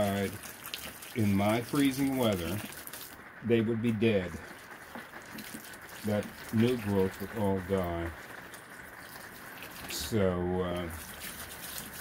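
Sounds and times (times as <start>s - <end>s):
water trickling onto soil: 0.0s - 12.0s.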